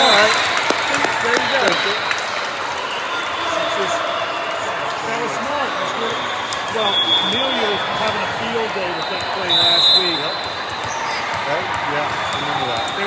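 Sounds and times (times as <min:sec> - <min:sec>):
indistinct chatter in gymnasium: 0:00.0 - 0:13.0.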